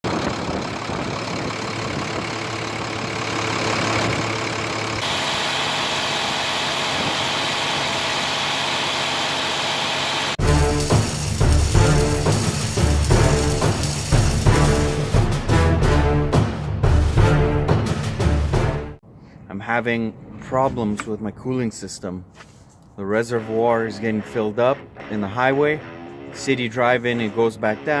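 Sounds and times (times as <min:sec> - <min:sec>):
diesel truck engine running: 0:00.0 - 0:15.8.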